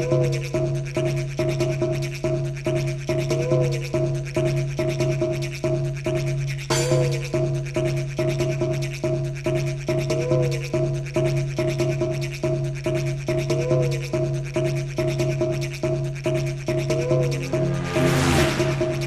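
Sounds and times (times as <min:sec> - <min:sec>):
electronic dance music: 0:16.8 - 0:19.0
crash-like burst of noise: 0:17.5 - 0:19.0.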